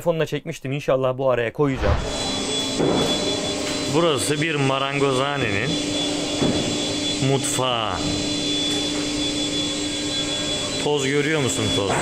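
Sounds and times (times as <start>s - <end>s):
droning machinery: 2.0s - 12.0s.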